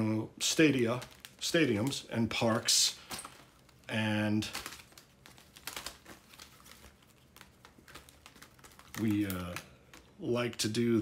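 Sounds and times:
card sheets rustling: 0.4s - 11.0s.

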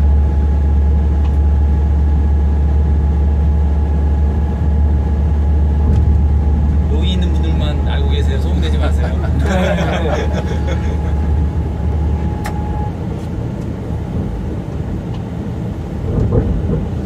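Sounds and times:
faint steady tonal hum: 0.0s - 13.0s
train cab low rumble: 0.0s - 17.0s.

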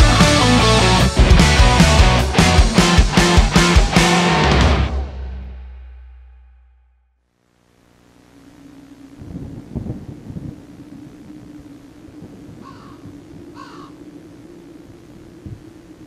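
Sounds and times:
steady low hum: 7.3s - 16.0s.

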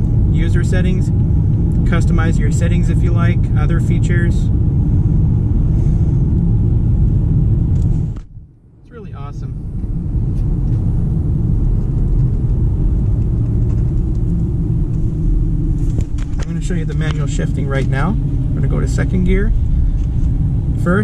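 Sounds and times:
car road and engine rumble: 0.0s - 21.0s.

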